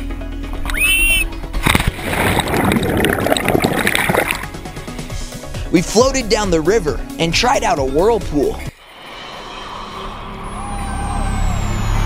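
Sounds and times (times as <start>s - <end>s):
background music: 0.0s - 10.8s
rushing gurgling underwater: 1.6s - 4.6s
splash into water: 1.6s - 4.6s.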